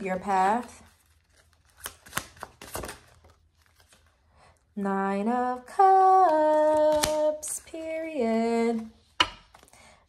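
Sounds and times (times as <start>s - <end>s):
cards being shuffled: 0.6s - 4.1s, 6.0s - 7.6s.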